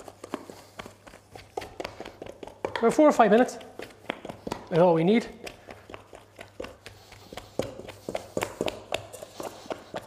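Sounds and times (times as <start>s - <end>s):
dough slapping and squelching: 0.0s - 10.0s.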